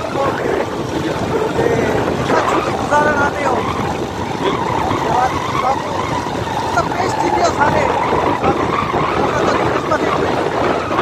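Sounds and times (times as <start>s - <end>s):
motorcycle engine: 0.0s - 11.0s
wind buffeting microphone: 0.0s - 11.0s.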